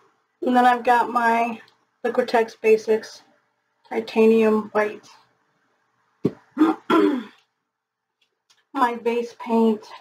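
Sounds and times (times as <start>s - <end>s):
woman clearing her throat: 6.6s - 7.4s.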